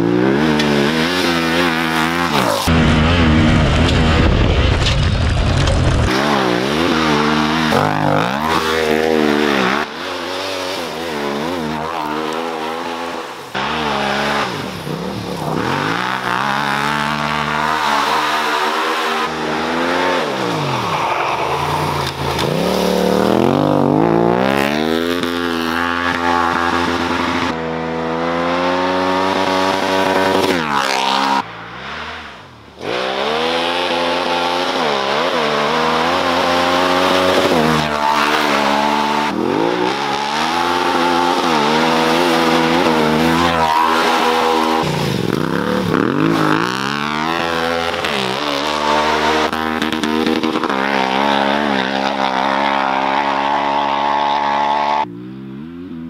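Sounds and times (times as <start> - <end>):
motorcycle engine revving: 0.0 - 56.0.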